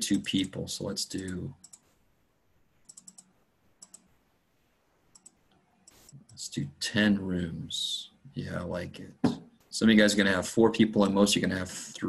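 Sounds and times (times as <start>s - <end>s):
computer mouse clicks: 1.2s - 2.0s, 2.8s - 4.2s, 5.1s - 6.4s.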